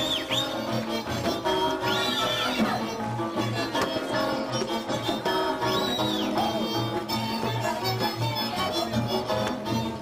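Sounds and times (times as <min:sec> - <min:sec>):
double bass: 0:00.0 - 0:10.0
fiddle: 0:00.0 - 0:10.0.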